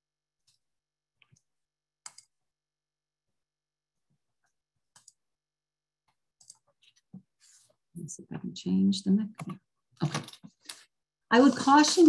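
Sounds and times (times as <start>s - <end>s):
computer mouse clicks: 1.2s - 2.3s, 4.9s - 5.2s, 6.4s - 6.7s.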